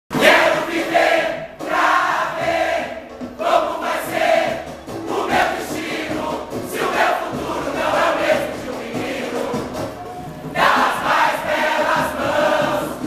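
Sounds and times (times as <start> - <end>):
large choir singing samba: 0.1 - 13.0.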